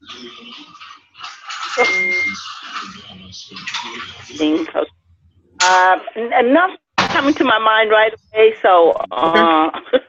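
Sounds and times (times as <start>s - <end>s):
voices talking on a call: 0.0s - 10.0s
short steady beep: 1.8s - 2.4s.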